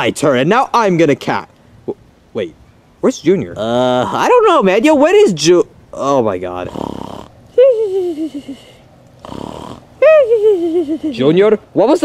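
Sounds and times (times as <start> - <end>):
person voicing cartoon snoring: 6.6 - 11.3.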